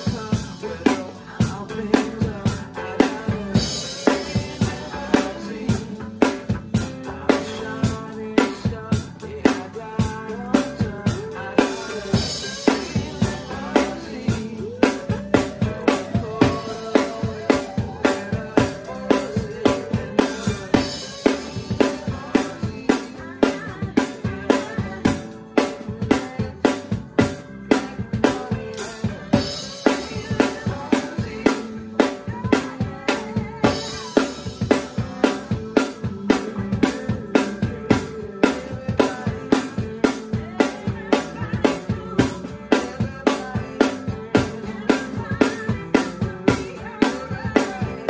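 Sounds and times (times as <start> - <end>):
drum kit rock groove: 0.0 - 48.0.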